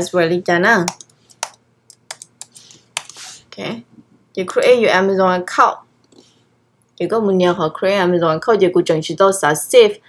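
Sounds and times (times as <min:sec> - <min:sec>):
keyboard keystrokes: 0:00.8 - 0:03.2.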